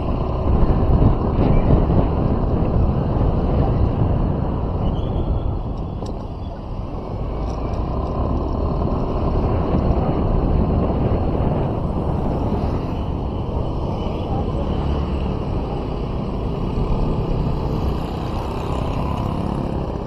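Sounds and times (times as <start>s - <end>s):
vehicle road noise: 0.0s - 20.0s
wind rumble on microphone: 0.0s - 20.0s.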